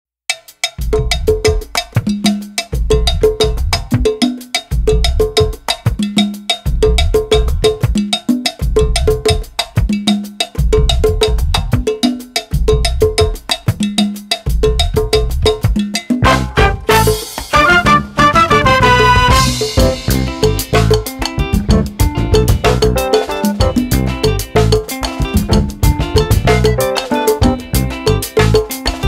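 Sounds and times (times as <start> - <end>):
percussion groove of bell and drums: 0.3 - 29.0
deep low bass notes: 17.8 - 23.0, 23.6 - 24.8, 25.4 - 26.8.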